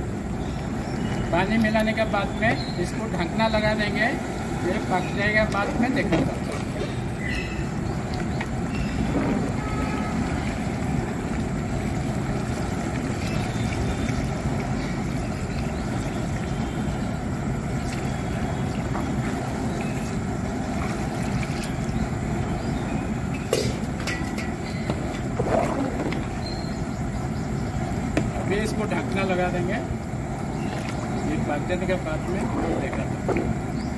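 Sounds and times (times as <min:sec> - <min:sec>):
low rumbling noise: 0:00.0 - 0:33.9.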